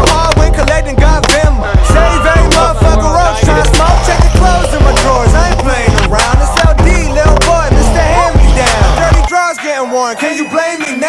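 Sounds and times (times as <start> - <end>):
hip-hop music: 0.0 - 11.0.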